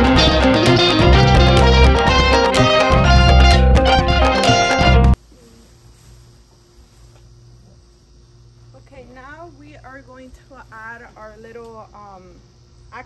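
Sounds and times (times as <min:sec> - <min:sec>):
outdoor background hum: 0:05.2 - 0:13.0.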